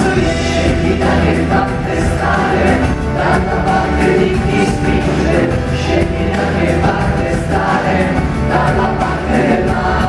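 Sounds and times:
live band playing: 0.0 - 10.0
singers singing together: 0.0 - 10.0.

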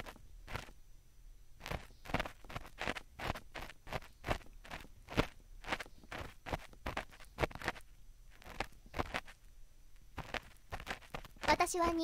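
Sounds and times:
ear picks scraping microphone: 0.0 - 0.8, 1.6 - 9.5, 10.1 - 11.9.

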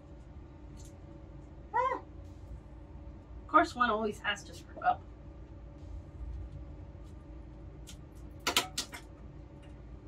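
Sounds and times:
steady low hum: 0.0 - 10.0
sharp plastic clicks and clatters: 7.9 - 9.1.

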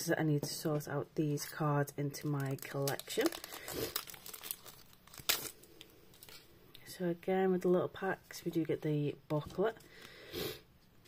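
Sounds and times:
foil wrapper crinkle: 1.3 - 6.4.

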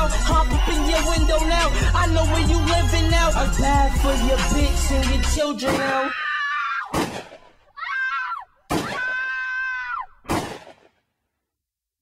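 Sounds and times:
high-pitched voice screaming: 5.7 - 6.9, 7.7 - 10.2
sharp bangs: 6.9 - 7.6, 10.2 - 11.0.

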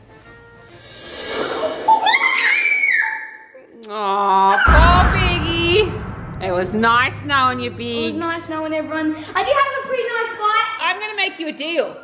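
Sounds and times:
rising whoosh: 0.6 - 2.4, 4.7 - 9.6.

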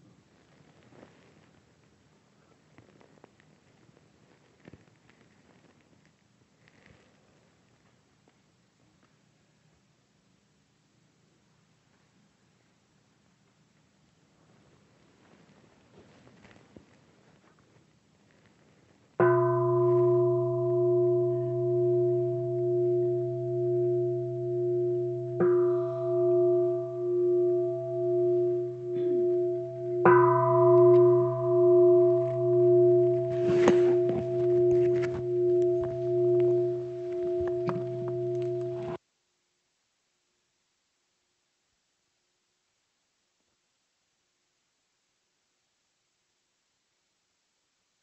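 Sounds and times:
soft rustling: 0.0 - 9.8, 11.7 - 20.2, 26.6 - 39.0
meditation bell ringing: 19.2 - 39.0.

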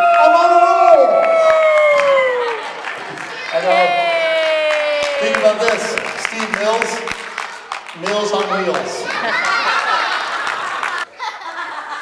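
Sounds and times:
people clapping: 0.0 - 11.1
audience laughing: 8.7 - 12.0.

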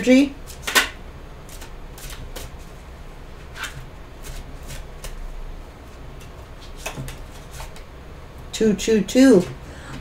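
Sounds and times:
cards being shuffled: 0.5 - 2.8.

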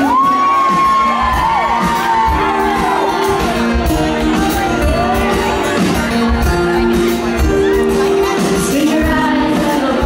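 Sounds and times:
audience whooping and cheering: 0.0 - 6.2.

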